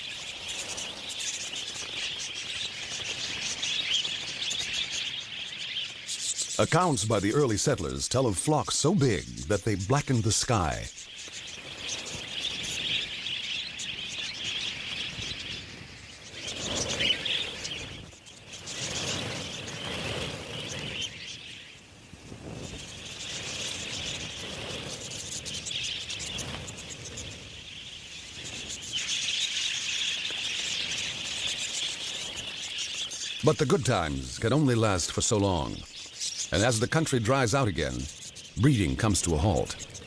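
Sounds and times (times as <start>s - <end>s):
budgerigars twittering: 0.0s - 21.8s, 22.6s - 40.0s.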